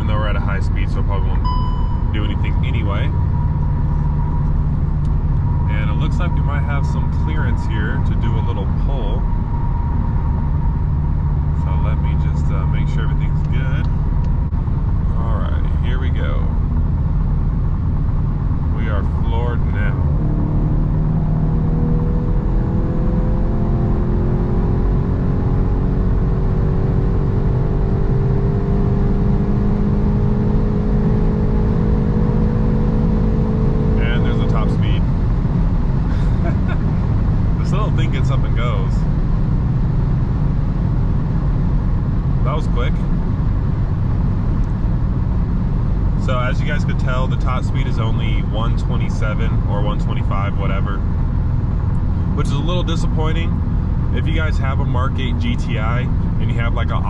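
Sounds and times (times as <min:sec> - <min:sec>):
car engine at full throttle: 0:00.0 - 0:57.0
road and wind noise: 0:00.0 - 0:57.0.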